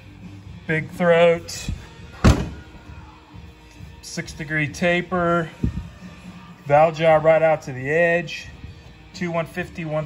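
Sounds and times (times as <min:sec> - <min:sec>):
dull thump on metal: 0:02.2 - 0:02.7.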